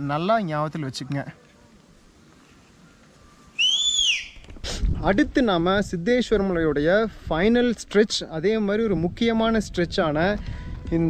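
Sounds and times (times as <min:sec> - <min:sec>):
faint outdoor background: 0:00.0 - 0:11.0
rising and falling whistle: 0:03.3 - 0:04.4.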